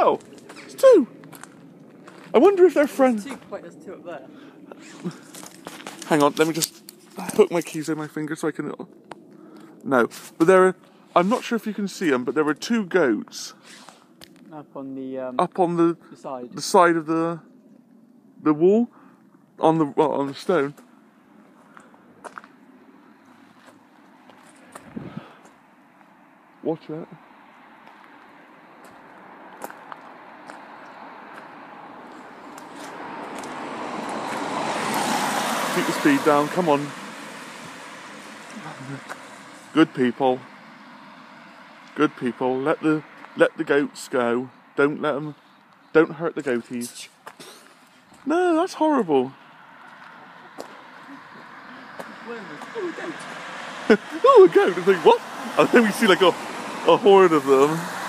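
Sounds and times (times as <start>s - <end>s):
faint footsteps: 0.0s - 3.7s, 4.8s - 7.8s, 20.3s - 26.2s, 27.8s - 35.1s, 37.5s - 39.7s, 43.1s - 43.4s, 46.4s - 48.3s, 49.5s - 53.8s
car approaching: 0.0s - 58.0s.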